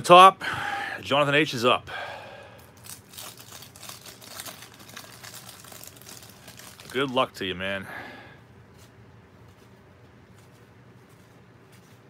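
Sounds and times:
cellophane wrapper crinkling and tearing: 0:02.6 - 0:07.4.

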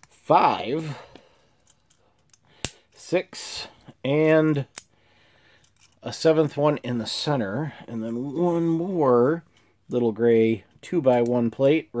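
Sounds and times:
faint clicks of pieces handled: 0:01.1 - 0:03.0, 0:04.7 - 0:04.9, 0:05.5 - 0:06.1.

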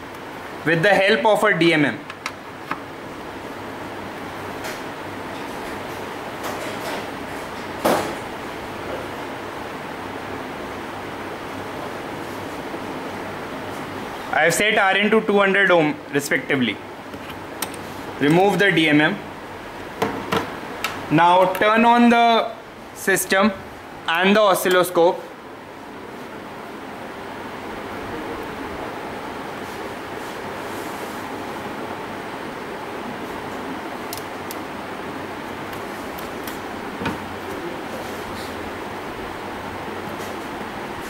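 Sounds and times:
room hiss and hum: 0:00.0 - 0:41.0.

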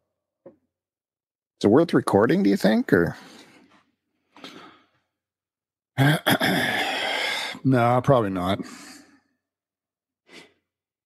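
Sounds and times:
person breathing out: 0:06.5 - 0:07.6.

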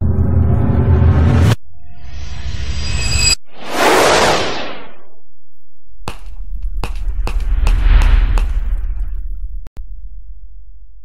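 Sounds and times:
low rumble: 0:06.2 - 0:10.4.

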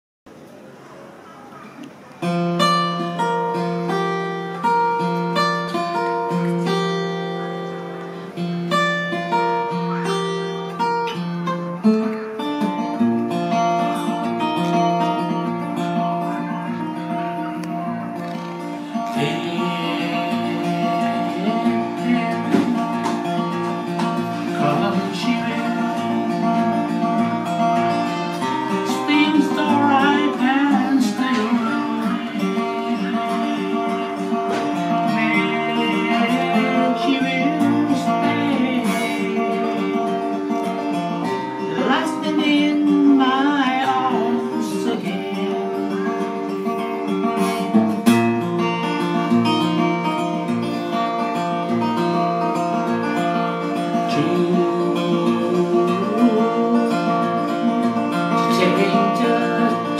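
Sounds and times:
fingerpicked acoustic guitar: 0:00.3 - 0:59.9
man singing with vibrato: 0:16.2 - 0:46.8, 0:53.4 - 0:59.9.

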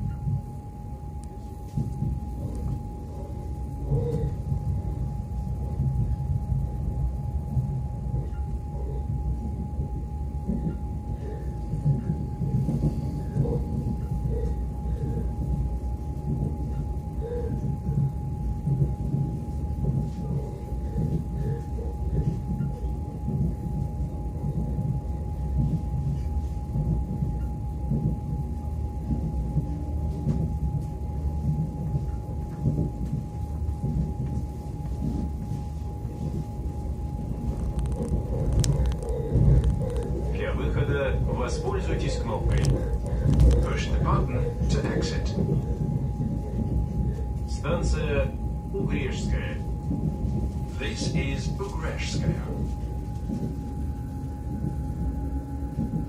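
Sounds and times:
thin whine: 0:00.0 - 0:56.0
train wheels rumbling on rail: 0:00.0 - 0:56.0.

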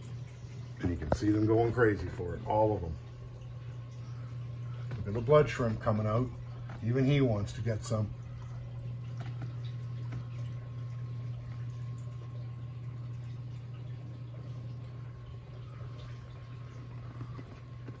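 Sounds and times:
aquarium low hum: 0:00.0 - 0:18.0
moving water: 0:00.0 - 0:18.0.

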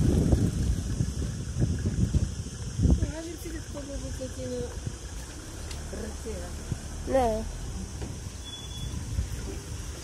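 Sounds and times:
wind noise on microphone: 0:00.0 - 0:05.3, 0:06.3 - 0:10.0.

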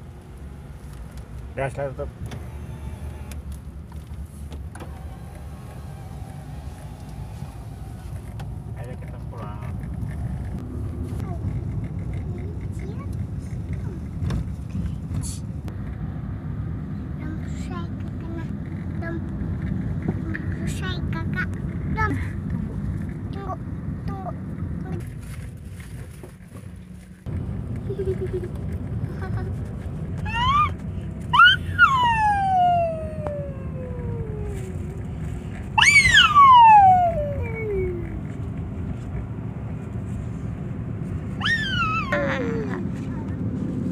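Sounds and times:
car road and engine noise: 0:00.0 - 0:43.9
child squealing: 0:30.2 - 0:34.9, 0:35.8 - 0:38.1, 0:41.4 - 0:42.9.

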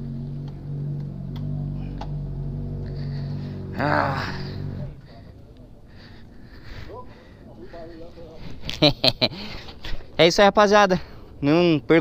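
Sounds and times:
faint voices: 0:03.8 - 0:08.6.

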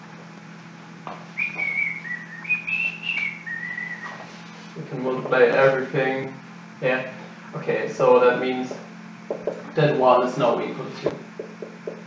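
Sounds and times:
man whistling a tune: 0:01.4 - 0:04.2.

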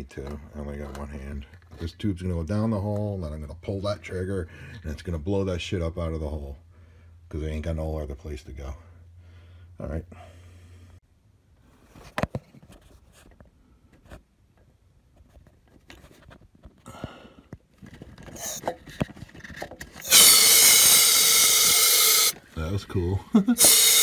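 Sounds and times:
compressed air hissing: 0:20.0 - 0:22.3, 0:23.6 - 0:24.0.

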